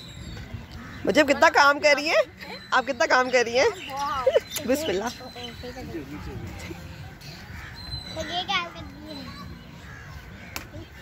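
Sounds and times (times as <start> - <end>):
children's voices: 8.1 - 9.8.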